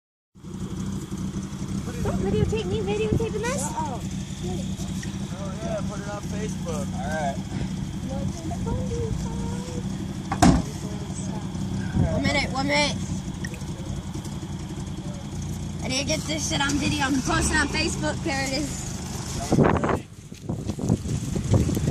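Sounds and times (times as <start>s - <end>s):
car engine idling: 0.4s - 21.9s.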